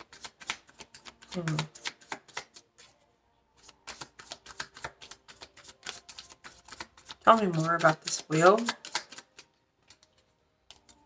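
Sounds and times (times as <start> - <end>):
cards being shuffled: 0.0 - 3.0, 3.6 - 11.0.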